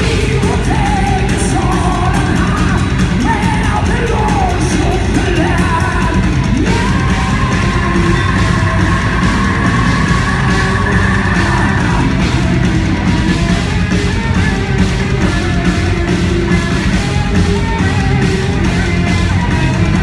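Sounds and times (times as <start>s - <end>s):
male vocal singing: 0.0s - 12.5s
bass guitar: 0.0s - 20.0s
electric guitar: 0.0s - 20.0s
rapid drums: 0.0s - 20.0s.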